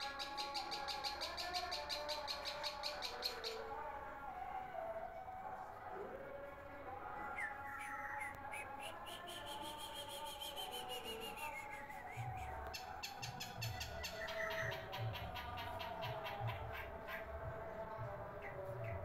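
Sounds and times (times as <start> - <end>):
bird singing varied song: 0.0 - 3.8, 7.0 - 19.0.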